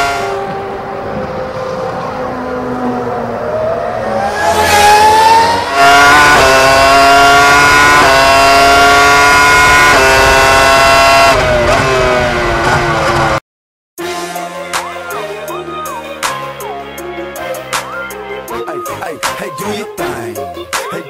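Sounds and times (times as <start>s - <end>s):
car engine revving: 0.0s - 13.4s.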